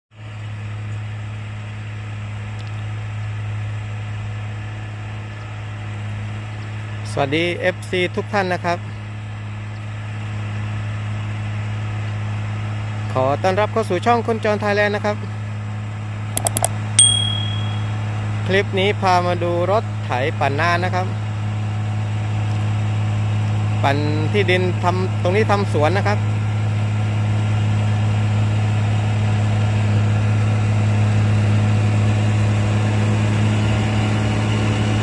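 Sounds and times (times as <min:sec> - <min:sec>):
tractor engine drone: 0:00.2 - 0:35.0
quick clicks: 0:16.4 - 0:17.8
bell ding: 0:16.4 - 0:18.0.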